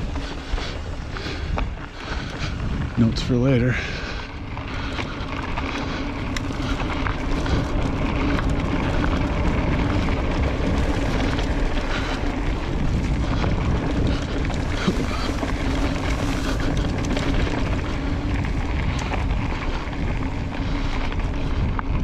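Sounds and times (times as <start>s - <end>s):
bike clicks and rattles: 0.0s - 22.0s
bike tyres rolling on dirt: 0.0s - 22.0s
wind rumbling on microphone: 0.0s - 22.0s.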